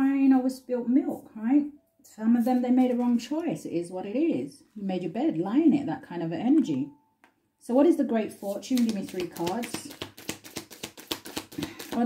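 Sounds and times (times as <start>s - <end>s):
cards being shuffled: 8.3s - 12.0s.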